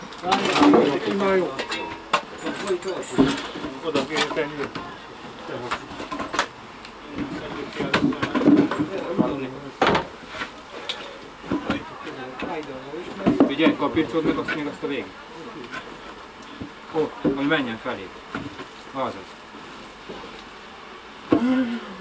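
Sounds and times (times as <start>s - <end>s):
low voices: 21.3s - 22.0s.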